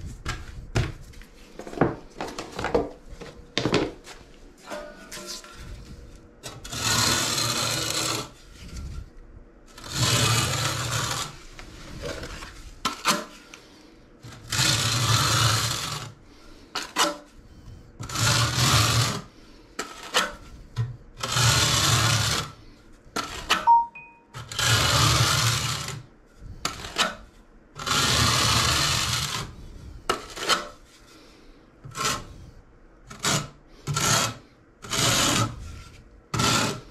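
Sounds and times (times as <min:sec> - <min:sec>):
trowel scraping mortar on wall: 0:06.4 - 0:09.0, 0:09.7 - 0:13.6, 0:14.2 - 0:16.2, 0:16.8 - 0:17.3, 0:18.0 - 0:22.6, 0:23.2 - 0:23.6, 0:24.4 - 0:30.9, 0:31.8 - 0:32.4, 0:33.0 - 0:36.9.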